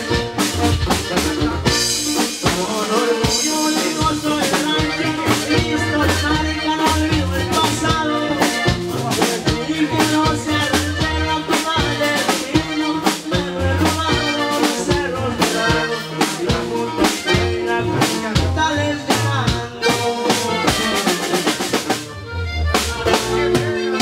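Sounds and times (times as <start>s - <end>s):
accordion melody: 0.0s - 24.0s
bajo sexto: 0.0s - 24.0s
drum kit: 0.0s - 24.0s
sousaphone bass line: 0.0s - 24.0s.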